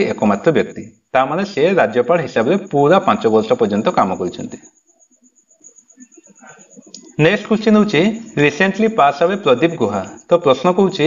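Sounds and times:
faint murmur of man's voice: 6.0 - 8.6.

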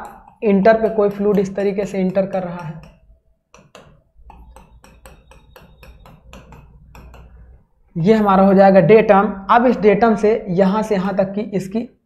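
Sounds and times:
marker tapping on a whiteboard: 0.0 - 7.6.

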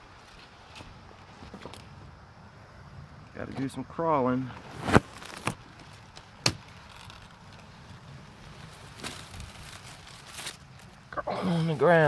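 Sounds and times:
corn stalks rustling: 4.4 - 12.0
stalk snapping: 4.8 - 7.7, 8.8 - 10.9.

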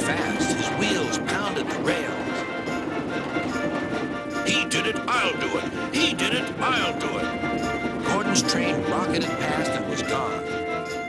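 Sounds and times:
background music: 0.0 - 11.0
steam locomotive running: 0.0 - 11.0
wheels beating on rails: 0.0 - 11.0.

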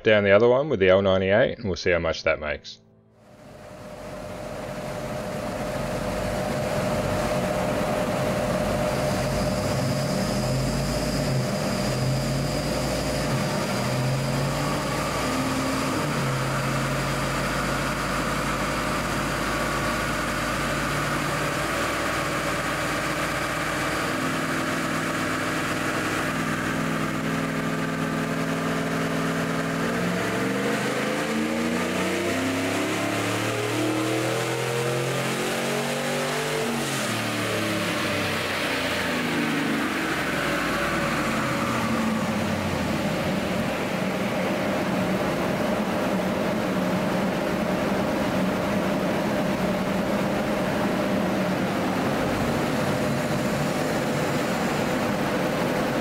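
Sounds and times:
car engine revving on dyno: 3.2 - 56.0.

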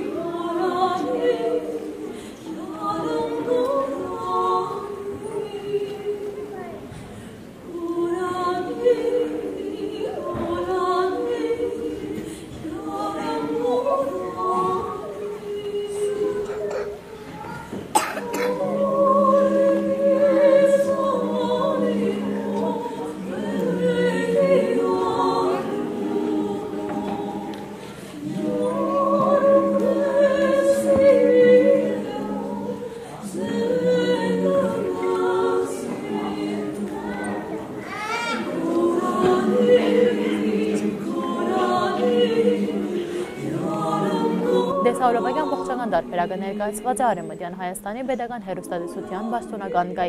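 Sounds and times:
mixed choir singing a cappella: 0.0 - 50.0.

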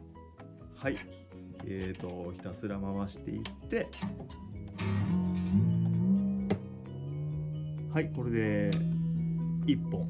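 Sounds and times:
guitar string rising in pitch: 4.6 - 10.0.

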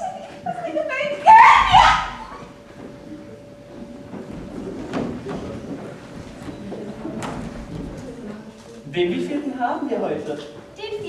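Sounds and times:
faint steady hum: 0.0 - 11.0
audience movement sounds: 2.2 - 9.1.

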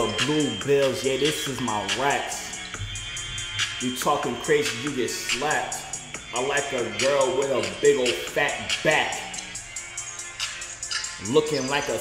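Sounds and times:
instrumental hip hop beat: 0.0 - 12.0.

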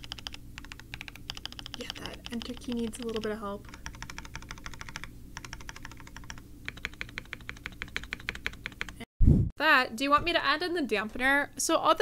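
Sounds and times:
fast typing on mechanical keyboard: 0.0 - 9.0.

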